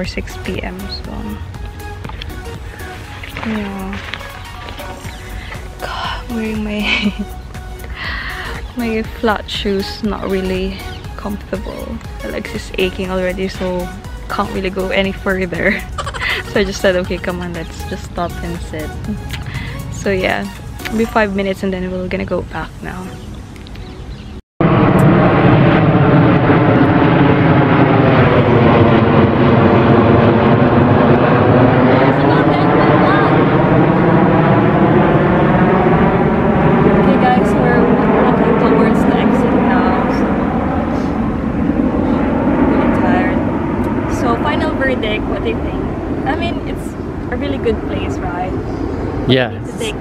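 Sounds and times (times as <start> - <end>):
jet aircraft passing overhead: 0.0 - 50.0.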